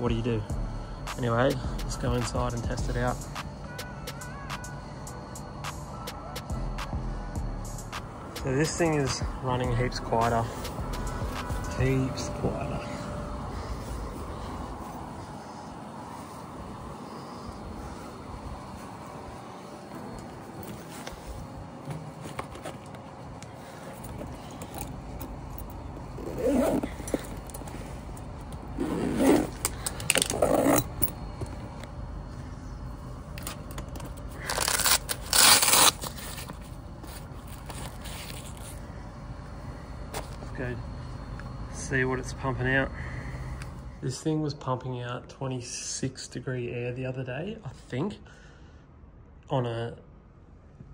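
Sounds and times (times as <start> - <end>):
air conditioner outdoor unit running: 0.0 - 50.9
fabric backpack handling noise: 19.6 - 31.4.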